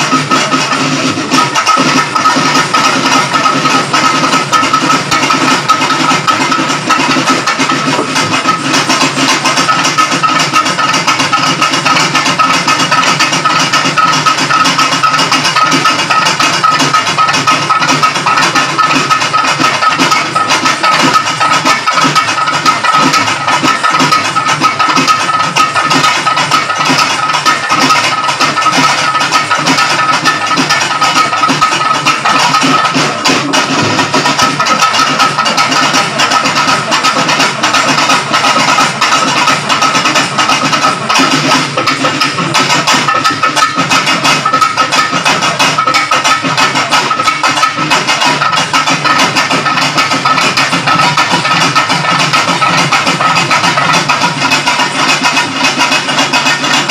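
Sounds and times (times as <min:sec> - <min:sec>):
hand drums playing: 0:00.0 - 0:56.9.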